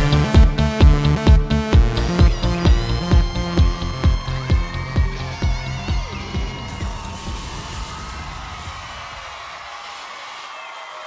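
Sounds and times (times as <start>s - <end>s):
electropop song with heavy kick drum: 0.0s - 8.3s
audience cheering and whooping: 2.3s - 11.0s.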